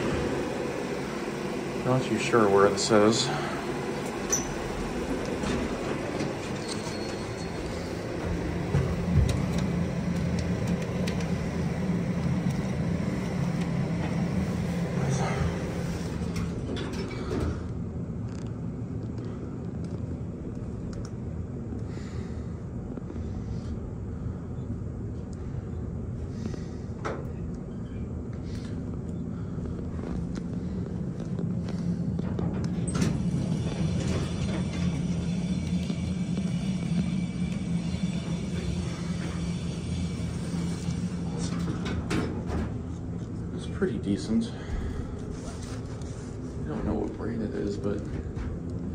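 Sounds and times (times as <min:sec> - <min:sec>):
elevator hum and rumble: 0:00.0 - 0:48.9.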